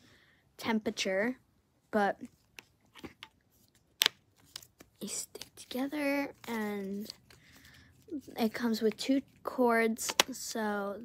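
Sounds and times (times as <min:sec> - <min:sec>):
hand warmers clicking and tapping: 0:10.0 - 0:10.3.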